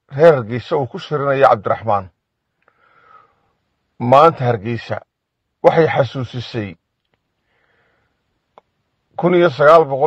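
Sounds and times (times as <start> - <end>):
faint breath drawn in: 2.6 - 3.7, 7.4 - 8.4
small click: 7.0 - 7.3.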